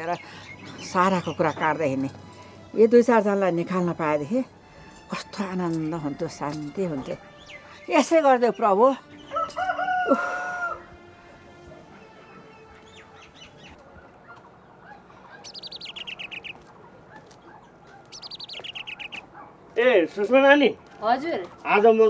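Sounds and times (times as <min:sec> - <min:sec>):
songbird trilling: 0:12.8 - 0:19.5.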